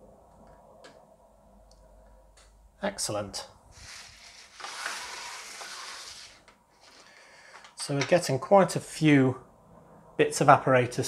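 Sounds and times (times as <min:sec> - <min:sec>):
plastic plate scraping across desk: 0:03.8 - 0:07.1.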